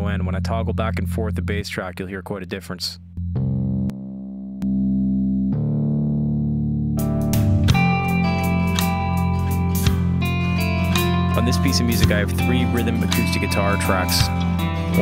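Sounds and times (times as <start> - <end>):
bass guitar low notes: 0.0 - 15.0
drums: 7.0 - 15.0.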